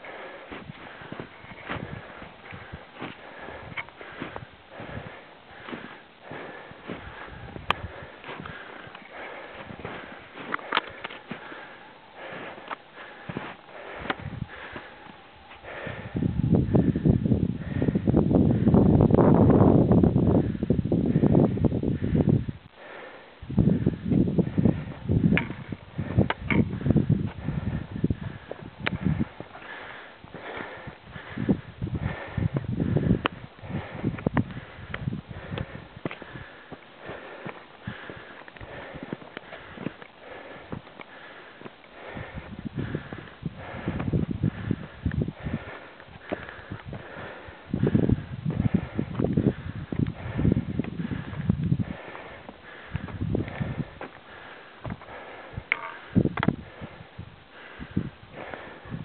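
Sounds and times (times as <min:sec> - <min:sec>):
footsteps crunching on snow: 0:00.0 - 0:15.8, 0:35.4 - 0:42.4
footsteps on snow and rock: 0:00.0 - 0:16.1, 0:24.1 - 0:57.0
heavy breathing: 0:00.0 - 0:19.1, 0:20.2 - 0:59.0.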